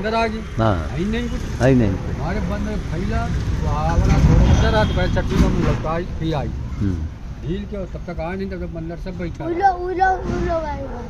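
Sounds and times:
motor vehicle passing: 0:00.7 - 0:07.8.

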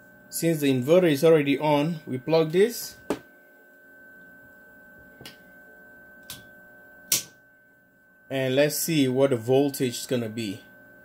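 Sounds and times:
electrical hum with high whine: 0:00.0 - 0:11.0
meter probes clicking into plug: 0:06.2 - 0:06.5, 0:07.1 - 0:07.4.

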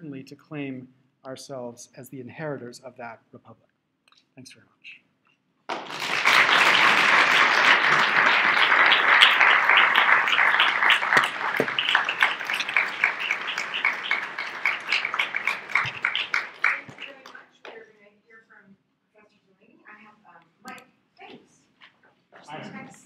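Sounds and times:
audience applauding: 0:05.7 - 0:17.5.

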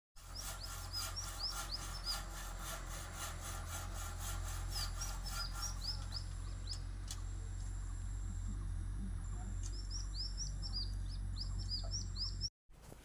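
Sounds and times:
bird chirping: 0:00.3 - 0:02.3, 0:04.7 - 0:12.5
steady low hum: 0:00.5 - 0:12.5.

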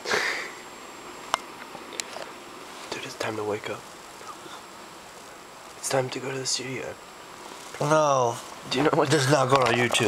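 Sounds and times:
person sniffing: 0:00.0 - 0:00.6.

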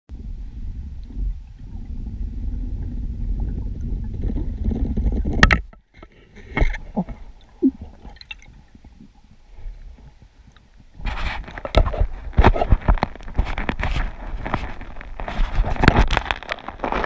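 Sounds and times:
low underwater rumble: 0:00.1 - 0:11.2.

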